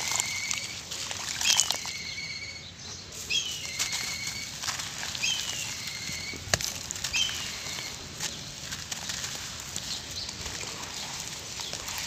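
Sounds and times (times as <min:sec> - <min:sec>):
hands squishing wet paste: 0:00.0 - 0:02.3, 0:03.3 - 0:12.0
bird chirping: 0:01.4 - 0:12.0.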